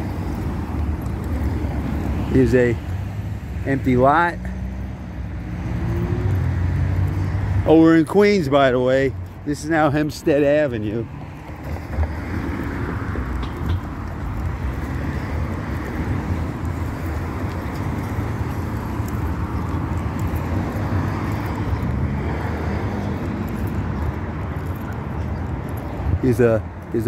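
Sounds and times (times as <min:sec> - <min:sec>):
cars passing on a street: 0:00.0 - 0:27.0.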